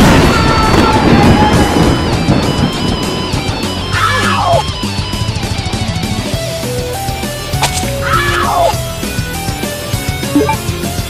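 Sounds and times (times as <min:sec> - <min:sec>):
heavy metal guitar music: 0:01.7 - 0:11.0.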